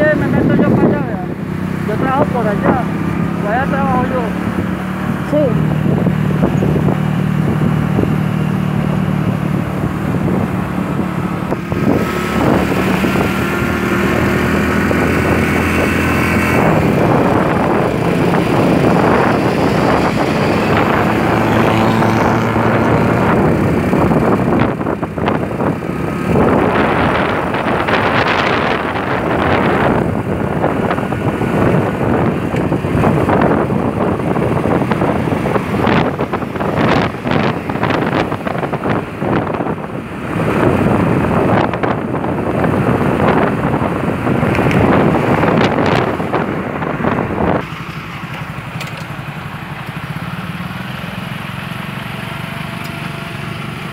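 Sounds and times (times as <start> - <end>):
wind rushing over microphone: 0.0 - 50.8
road traffic noise: 0.0 - 53.9.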